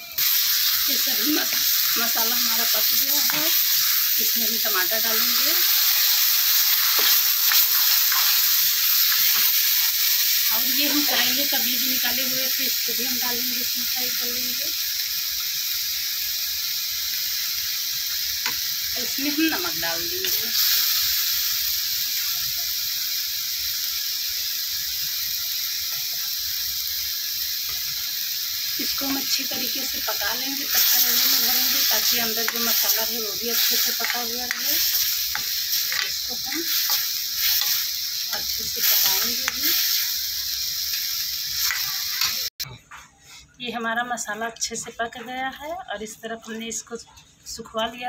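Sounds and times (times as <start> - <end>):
food sizzling in oil: 0.0 - 42.7
steel spoon stirring: 1.4 - 9.9, 28.8 - 42.5.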